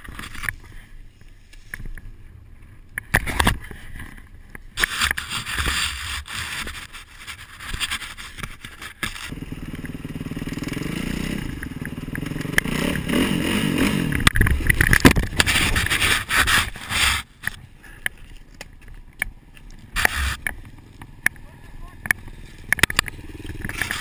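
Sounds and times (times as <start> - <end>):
dirt bike engine revving: 9.2 - 17.2, 20.0 - 20.5
bike crashing knocks and scrapes: 14.3 - 17.4.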